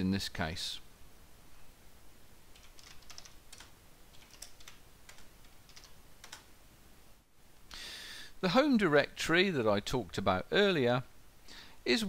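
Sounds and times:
keyboard typing clicks: 2.6 - 6.5.

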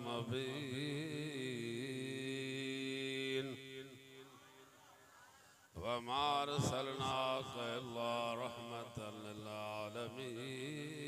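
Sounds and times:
man chanting in long held notes: 0.0 - 4.6, 5.8 - 11.0.

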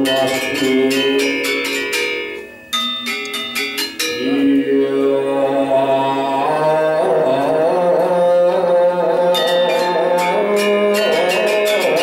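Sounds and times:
metallophones playing ringing notes: 0.0 - 6.3, 9.2 - 12.0.

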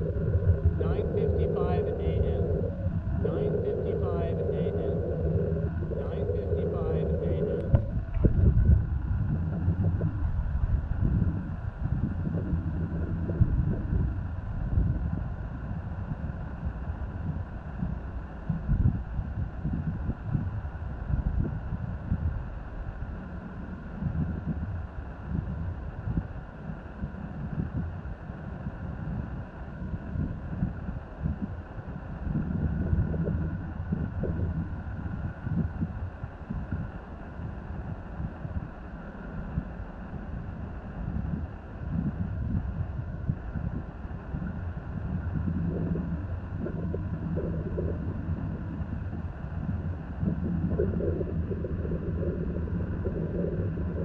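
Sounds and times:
distant engine drone: 0.0 - 28.2, 29.1 - 54.0
wind buffeting microphone: 0.0 - 54.0.

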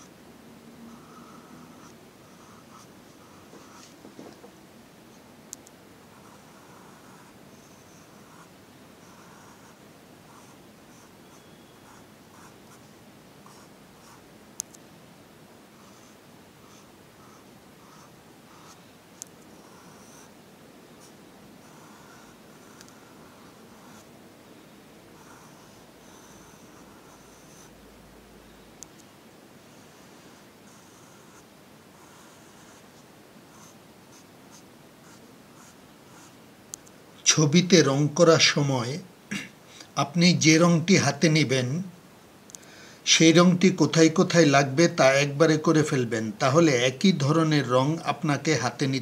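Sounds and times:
pencil scratching on paper: 0.9 - 4.0, 6.1 - 14.2, 19.5 - 20.3, 21.0 - 24.1, 25.2 - 27.8, 29.7 - 36.4.

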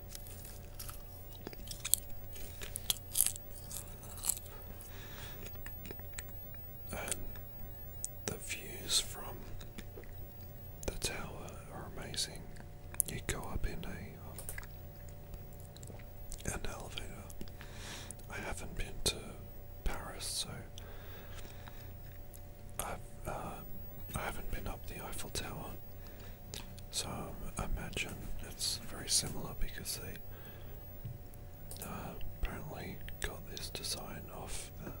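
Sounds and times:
chewing and crunching popcorn: 0.0 - 11.6, 12.2 - 18.3, 20.8 - 23.0, 24.8 - 26.9, 31.7 - 34.1.

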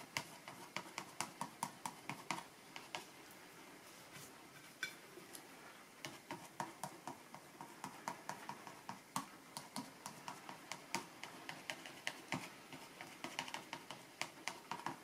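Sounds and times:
painting tool tapping on paper: 0.0 - 3.1, 6.0 - 15.0.

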